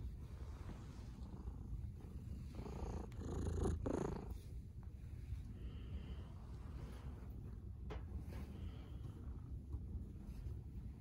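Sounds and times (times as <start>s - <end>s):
cat purring: 0.0s - 5.9s.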